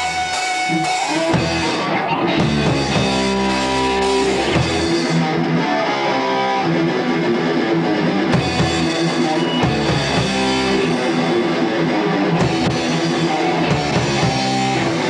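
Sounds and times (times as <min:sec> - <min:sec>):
drum kit: 0:00.0 - 0:05.7, 0:06.4 - 0:15.0
bass guitar: 0:00.0 - 0:15.0
distorted electric guitars: 0:00.0 - 0:15.0.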